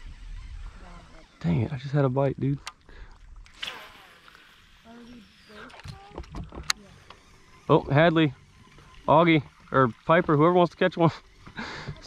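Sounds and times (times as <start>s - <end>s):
fishing reel spool whirring: 0.0s - 12.0s.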